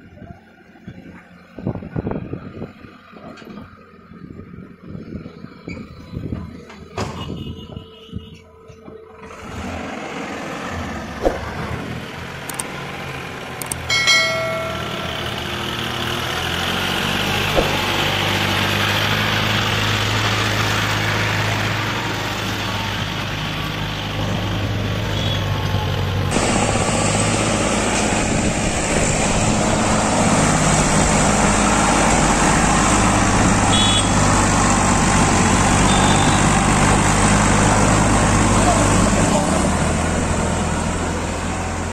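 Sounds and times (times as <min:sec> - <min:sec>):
tractor diesel engine under load: 0:00.0 - 0:07.2, 0:08.5 - 0:41.9.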